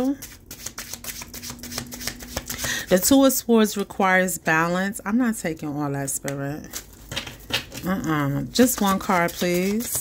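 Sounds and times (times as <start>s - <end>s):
cards being shuffled: 0.0s - 2.9s, 8.6s - 10.0s.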